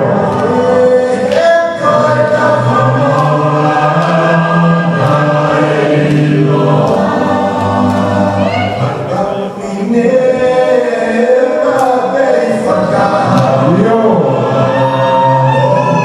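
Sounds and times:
group of voices singing: 0.0 - 16.0.

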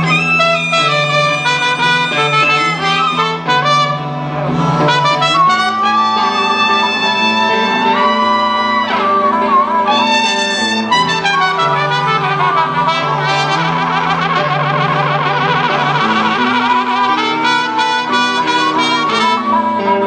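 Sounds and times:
blues band playing live: 0.0 - 20.0
wind instrument bending notes: 0.0 - 20.0.

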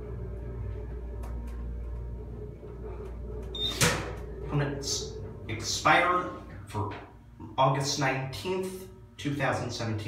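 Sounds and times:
elevator pump and motor hum: 0.0 - 7.5.

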